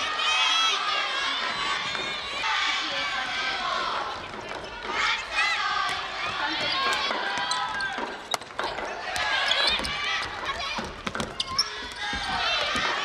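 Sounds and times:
players shouting: 0.0s - 13.0s
shoes squeaking on wooden floor: 6.6s - 13.0s.

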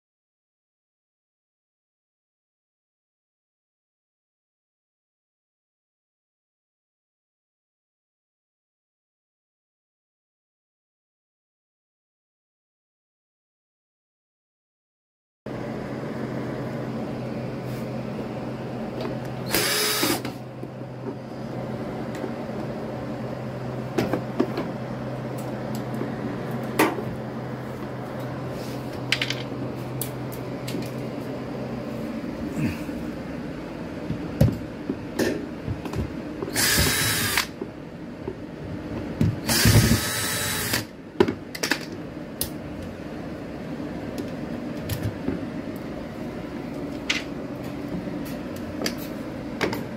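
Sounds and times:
steady low hum: 15.5s - 49.9s
power drill running: 19.4s - 20.3s, 36.5s - 37.6s, 39.4s - 40.9s.

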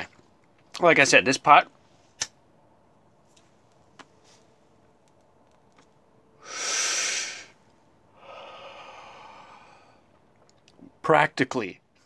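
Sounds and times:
breathing out smoke: 6.4s - 7.6s, 8.2s - 10.1s
hissing inhale of smoke: 6.4s - 7.6s.

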